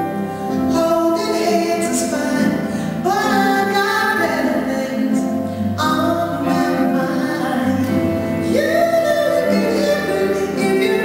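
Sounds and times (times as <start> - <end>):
jazz band with drums and keyboards: 0.0 - 11.0
woman singing slow ballad: 0.7 - 11.0.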